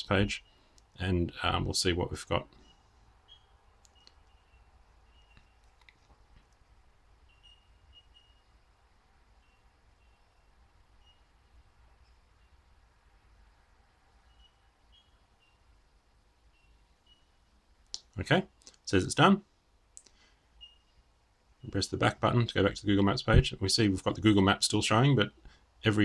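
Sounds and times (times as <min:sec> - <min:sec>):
low steady hum: 0:00.0 - 0:26.0
faint high chirps: 0:02.4 - 0:06.1, 0:07.0 - 0:18.7, 0:20.0 - 0:21.8.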